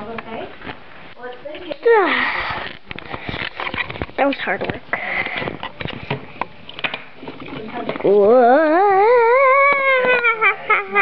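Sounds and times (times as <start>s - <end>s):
voice sliding down in pitch: 8.0s - 11.0s.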